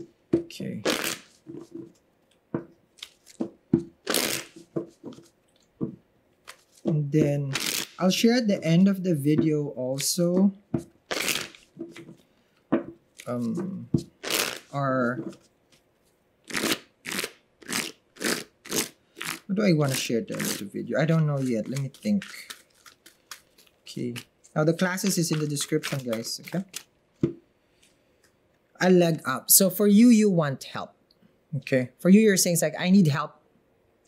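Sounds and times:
cards tapping and slapping: 1.5s - 7.0s, 9.4s - 14.6s, 21.4s - 24.3s, 24.9s - 27.4s
cards rustling when shuffled: 3.0s - 8.2s, 10.0s - 10.5s, 11.1s - 12.2s, 13.1s - 15.8s, 16.5s - 26.9s.

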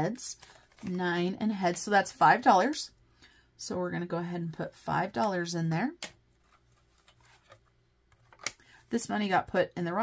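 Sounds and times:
paper handling sounds: 6.3s - 8.5s.

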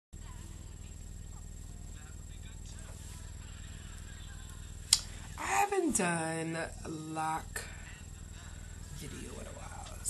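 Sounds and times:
electrical hum with hiss: 0.2s - 10.0s.

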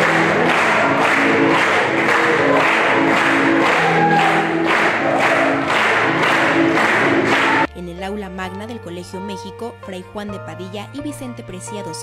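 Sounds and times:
people clapping in time: 0.0s - 7.7s.

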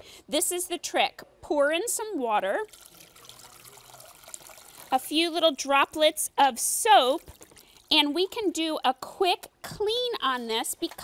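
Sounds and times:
water trickling into a bowl: 2.4s - 5.4s, 7.0s - 8.0s.

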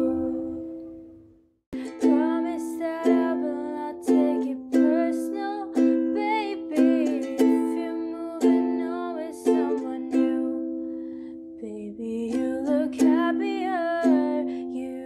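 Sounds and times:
ukulele strumming chords: 0.0s - 1.2s, 1.8s - 11.2s, 12.2s - 15.0s
wavering higher melody: 0.0s - 1.2s.

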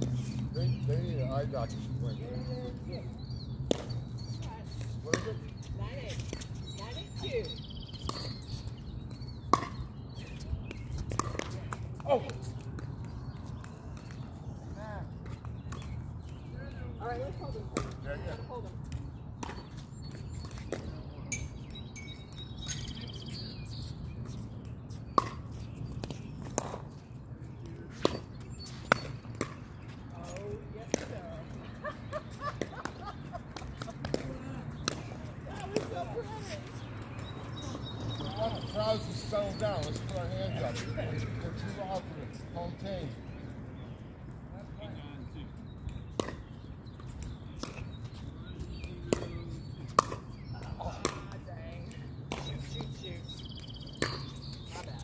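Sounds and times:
ball bouncing on hard court: 9.4s - 9.9s.

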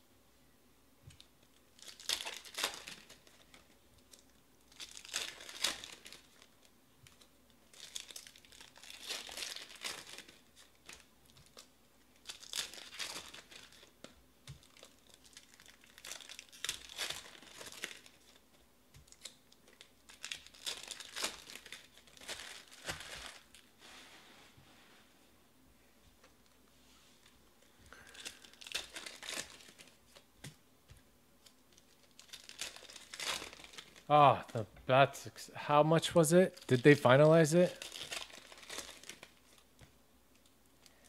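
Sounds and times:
foil packs tearing and crinkling: 1.8s - 6.5s, 7.7s - 14.0s, 14.6s - 18.4s, 19.1s - 23.7s, 27.9s - 30.0s, 31.7s - 34.1s, 36.6s - 39.6s.

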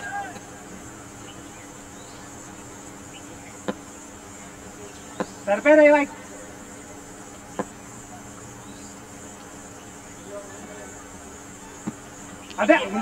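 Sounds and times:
short wavering shout: 0.0s - 0.7s
high-pitched insect buzz: 0.0s - 13.0s.

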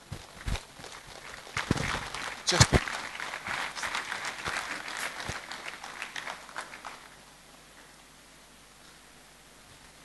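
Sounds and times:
audience applauding: 0.6s - 7.2s.

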